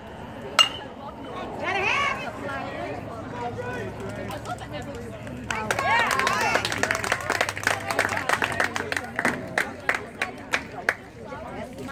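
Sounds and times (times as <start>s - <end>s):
spectators' voices: 0.0s - 11.9s
metal bat hitting ball: 0.6s - 1.0s.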